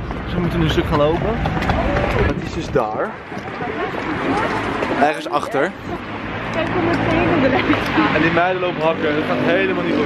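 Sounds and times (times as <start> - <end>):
group of people talking: 0.0 - 10.0
street noise hum: 0.0 - 10.0.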